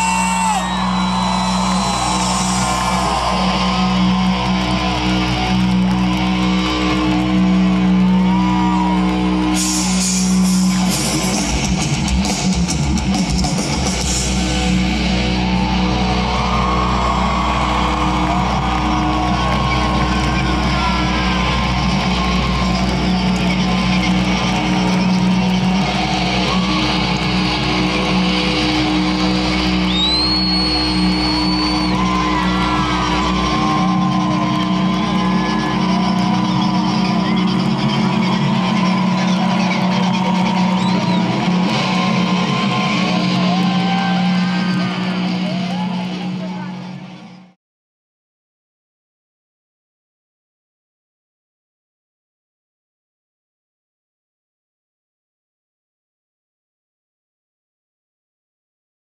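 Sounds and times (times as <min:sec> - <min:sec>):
concert crowd cheering: 0:00.0 - 0:47.6
droning chord from amplifiers: 0:00.6 - 0:47.1
high-pitched whistle: 0:29.9 - 0:32.4.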